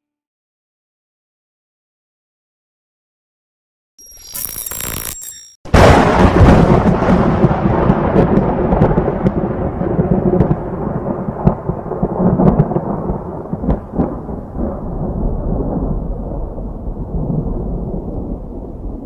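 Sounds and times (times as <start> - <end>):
thunder rumbling: 5.7 - 19.0.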